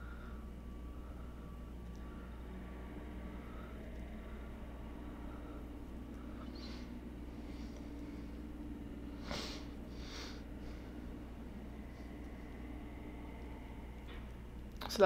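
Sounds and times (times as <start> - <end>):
faint soft breaths: 0.0 - 14.6
steady low hum: 0.0 - 15.0.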